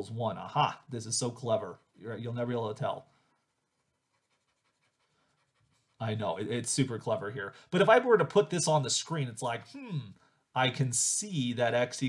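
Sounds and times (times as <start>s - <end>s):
stylus scratching on tablet screen: 1.2s - 6.2s.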